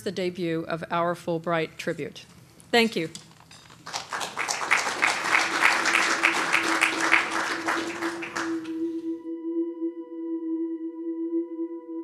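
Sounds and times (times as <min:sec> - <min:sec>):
audience applauding: 0:03.8 - 0:09.1
held musical tone: 0:06.1 - 0:12.0.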